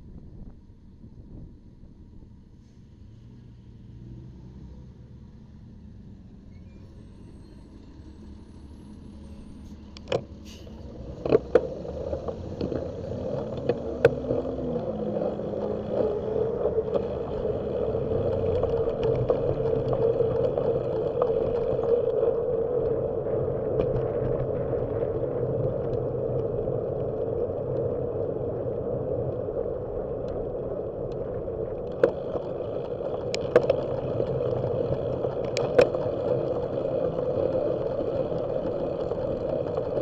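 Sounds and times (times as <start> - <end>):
road rumble: 0.0 - 40.0
wind rushing over microphone: 10.8 - 40.0
bicycle rattling: 10.9 - 40.0.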